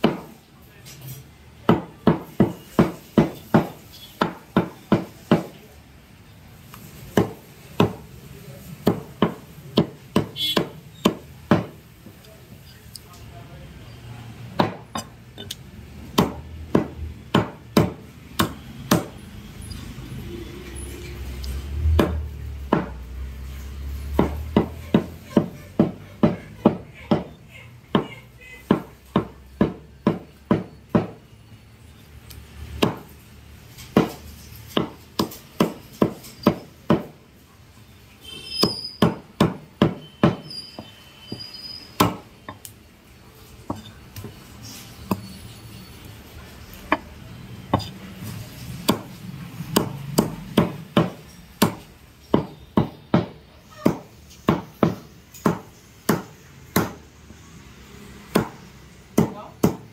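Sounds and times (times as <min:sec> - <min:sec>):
cleaver chopping on wooden block: 0:00.0 - 0:00.3, 0:01.7 - 0:05.5, 0:07.2 - 0:08.0, 0:08.8 - 0:11.8, 0:14.6 - 0:15.1, 0:16.1 - 0:19.1, 0:28.7 - 0:31.2, 0:32.8 - 0:33.1, 0:33.9 - 0:37.1, 0:38.6 - 0:40.5, 0:42.0 - 0:42.6, 0:47.7 - 0:47.9, 0:48.8 - 0:57.0, 0:58.3 - 0:58.6, 0:59.2 - 0:59.9.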